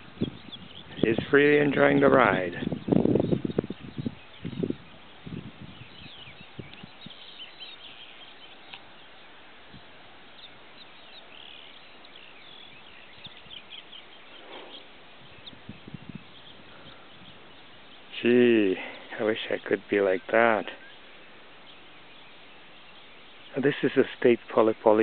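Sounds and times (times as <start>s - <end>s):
bird chirps: 0.0s - 25.0s
soft steady hiss: 0.0s - 25.0s.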